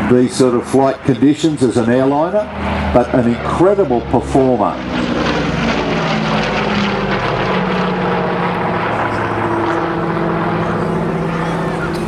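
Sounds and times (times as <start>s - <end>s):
propeller plane engines droning: 0.0s - 12.0s.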